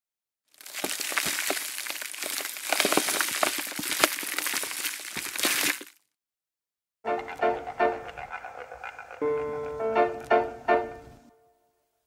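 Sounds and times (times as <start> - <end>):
dense crackling and crunching: 0.5 - 6.2.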